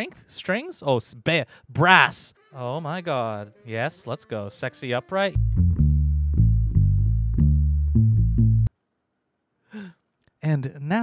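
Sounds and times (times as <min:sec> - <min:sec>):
plucked upright bass: 0:05.4 - 0:08.7.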